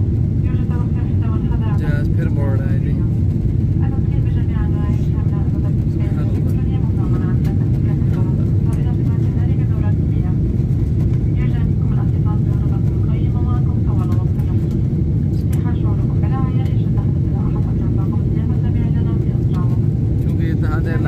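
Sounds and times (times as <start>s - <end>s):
airliner engine rumble: 0.0s - 21.0s.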